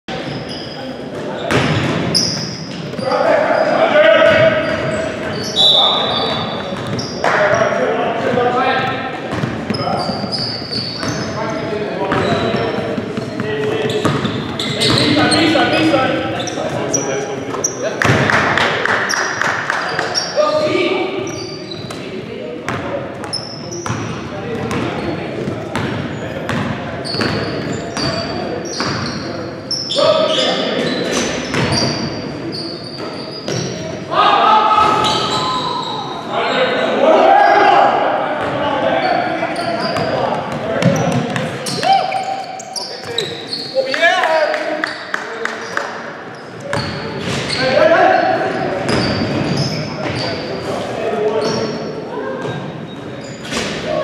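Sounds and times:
sneakers squeaking: 0.1s - 44.1s, 44.7s - 54.0s
players calling out: 0.3s - 21.8s, 27.1s - 50.6s.

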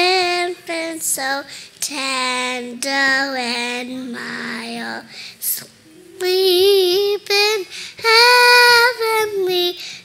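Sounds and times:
child singing into a microphone: 0.0s - 10.0s.

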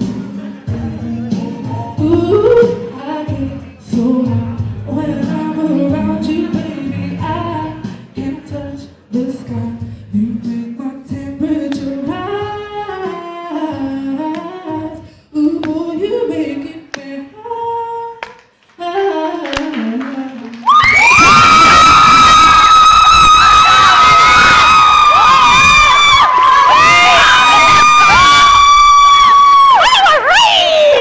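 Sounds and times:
woman singing softly: 1.0s - 20.7s
audience screaming and cheering: 20.6s - 31.0s.

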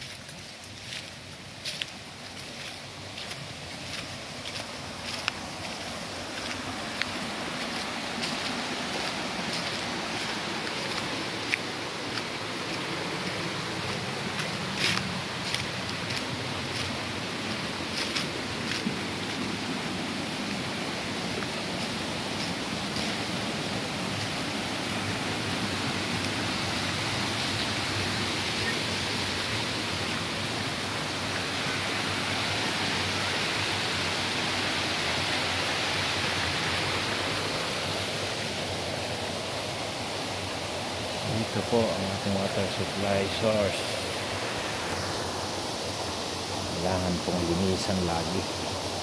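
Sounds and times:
footsteps on dry leaves: 0.0s - 30.2s
stream water rushing: 0.0s - 49.0s.

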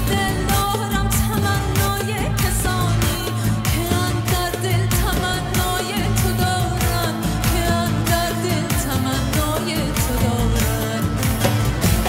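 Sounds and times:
bass and keyboards: 0.0s - 12.0s
drum beat: 0.0s - 12.0s
woman singing: 0.0s - 12.0s.

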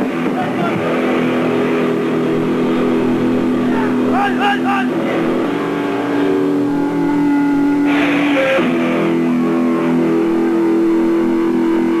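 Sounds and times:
distorted electric guitar: 0.0s - 12.0s.

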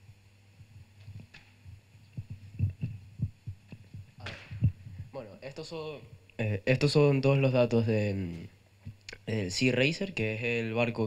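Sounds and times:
microphone handling thumps: 0.6s - 5.2s.

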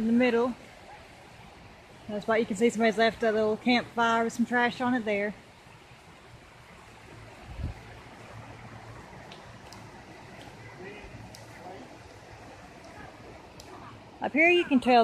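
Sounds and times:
creek running over rocks: 0.0s - 15.0s
light ticks: 9.2s - 10.6s, 11.2s - 12.2s.

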